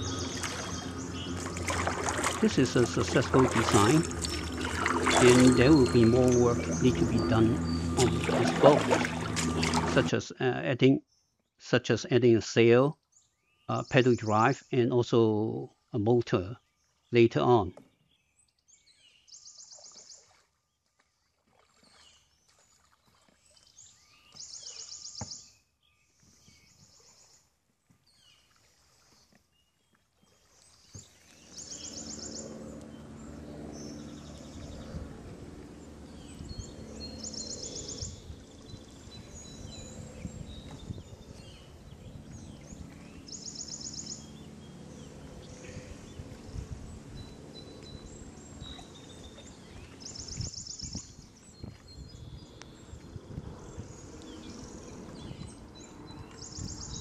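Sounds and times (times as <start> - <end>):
low steady hum: 0.0 - 10.6.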